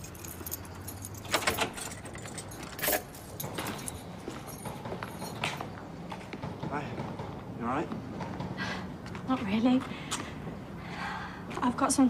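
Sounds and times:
key locking door clicks: 0:00.0 - 0:05.7
keys jangling: 0:00.0 - 0:05.8.

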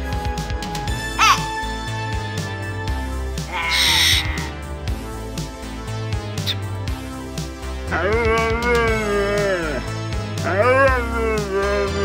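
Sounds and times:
background music with steady beat: 0:00.0 - 0:12.0
cockatiel call: 0:01.2 - 0:01.5, 0:03.5 - 0:04.5.

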